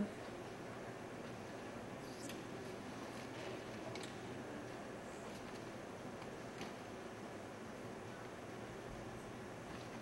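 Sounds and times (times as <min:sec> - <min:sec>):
low hiss and hum: 0:00.0 - 0:10.0.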